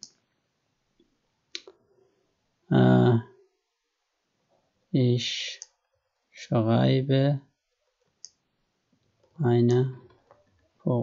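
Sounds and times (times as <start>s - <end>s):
man saying a word: 2.7s - 3.2s, 5.0s - 5.6s, 6.4s - 7.4s, 9.4s - 10.0s.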